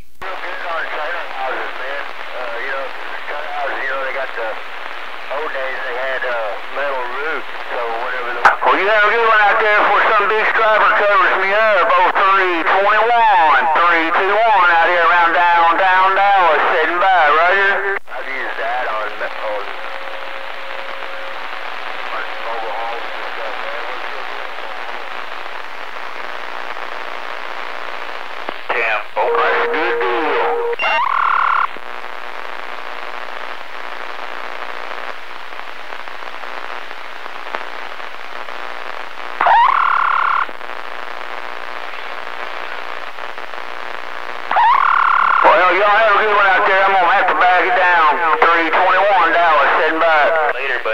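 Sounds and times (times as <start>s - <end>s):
radio bursts with steady tones: 0.0s - 50.9s
radio static: 0.0s - 50.9s
distorted warbling radio voice: 0.2s - 4.6s, 5.3s - 25.1s, 28.6s - 31.6s, 44.5s - 50.9s.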